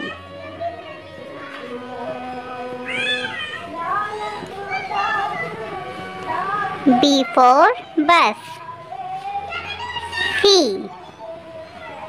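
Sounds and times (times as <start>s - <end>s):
background music: 5.4s - 8.8s, 10.4s - 10.9s.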